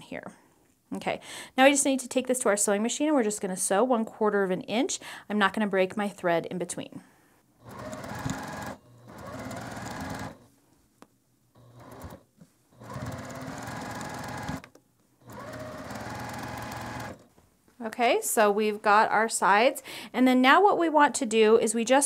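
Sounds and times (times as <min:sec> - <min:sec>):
sewing machine stitching: 0:07.6 - 0:10.5, 0:11.6 - 0:17.3.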